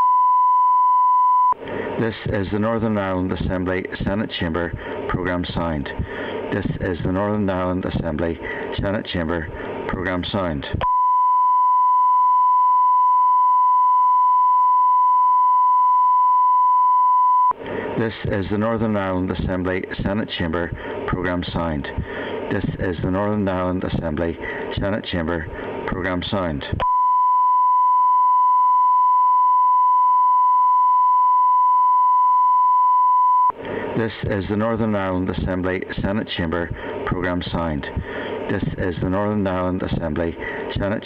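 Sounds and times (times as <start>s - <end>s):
steady test tone beep: 0.0s - 1.6s, 10.8s - 17.6s, 26.8s - 33.6s
steady pure test tone: 0.0s - 41.0s
recorded voice announcement: 2.0s - 10.9s, 17.9s - 26.8s, 33.9s - 41.0s.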